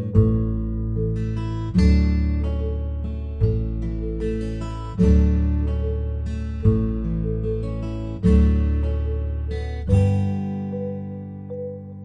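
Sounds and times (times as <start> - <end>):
strummed acoustic guitar chords: 0.0 - 12.0.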